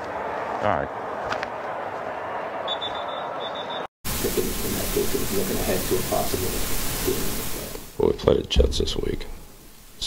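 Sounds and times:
stadium background noise: 0.0 - 9.3.

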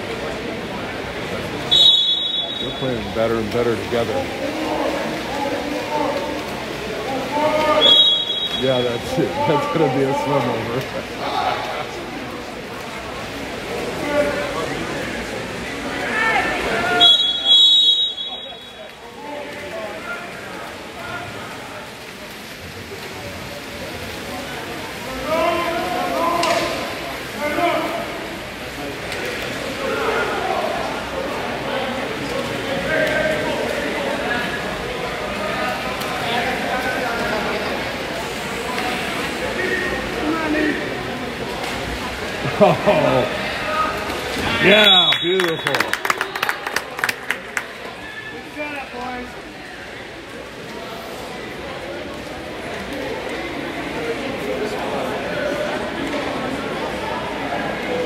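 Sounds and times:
spectators talking: 0.0 - 58.0
referee's whistle: 1.7 - 3.0, 7.8 - 8.7, 17.0 - 18.8, 44.6 - 46.3.

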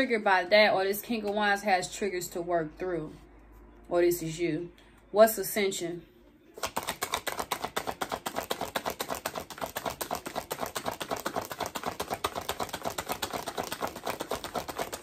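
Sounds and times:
cards being shuffled: 6.6 - 15.0.

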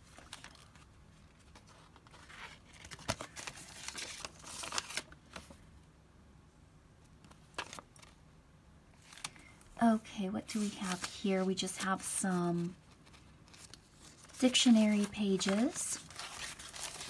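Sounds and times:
paper rustling and crinkling: 0.0 - 5.6, 7.3 - 8.2, 9.0 - 9.5, 10.4 - 17.0
sharp paper crackles: 0.0 - 5.6, 10.5 - 17.0.

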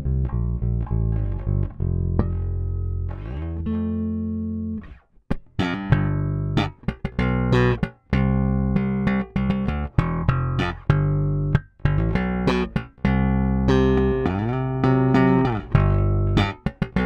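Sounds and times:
electric bass plucked notes: 0.0 - 17.0.

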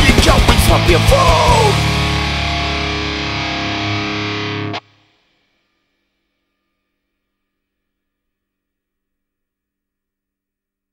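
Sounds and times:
distorted electric guitar chord: 0.0 - 5.1.

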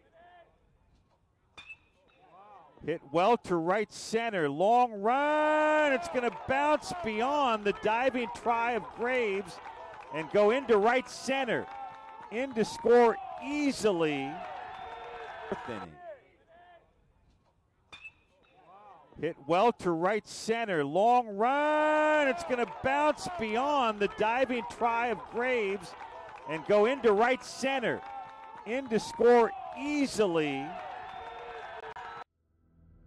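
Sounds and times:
quiet ballpark ambience: 0.0 - 32.2.

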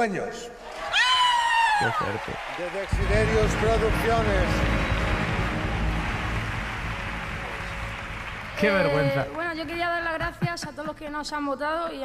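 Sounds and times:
large audience applauding: 0.6 - 10.9.

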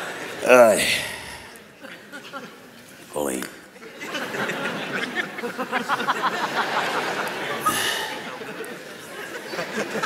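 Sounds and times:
audience laughing: 3.8 - 10.0.

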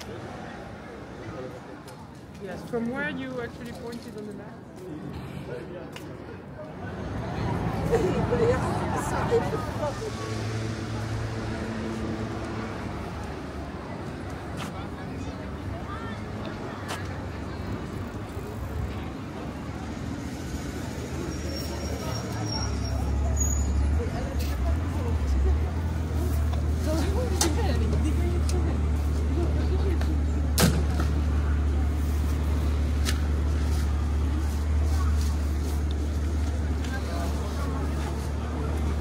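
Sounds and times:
city street traffic: 0.0 - 39.0
heavy vehicle engine rumbling: 6.8 - 39.0.

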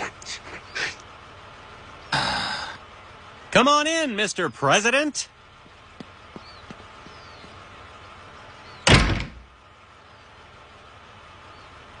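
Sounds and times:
faint steady background hum: 0.0 - 12.0
front door closing with heavy bang: 8.8 - 9.5.

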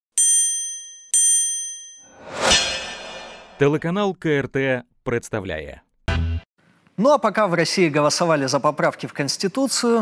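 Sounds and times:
bright chime dings: 0.2 - 2.1.

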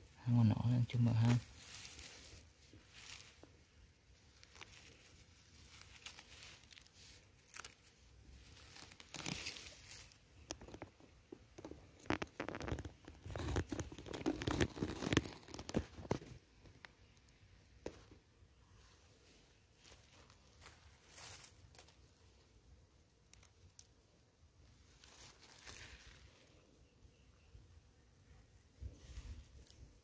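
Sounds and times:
grass and dry leaves rustling: 0.0 - 30.0.

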